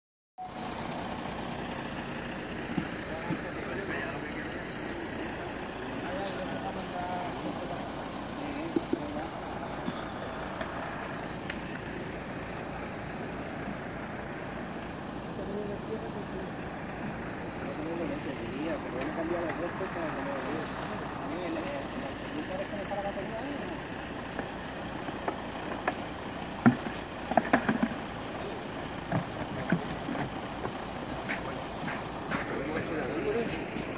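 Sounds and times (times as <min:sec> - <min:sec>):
vehicle engine running: 0:00.4 - 0:33.9
indistinct voices: 0:00.5 - 0:33.9.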